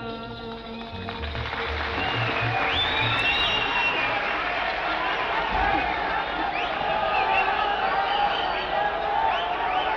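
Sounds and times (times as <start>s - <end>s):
audience applause and cheering: 0.5s - 9.9s.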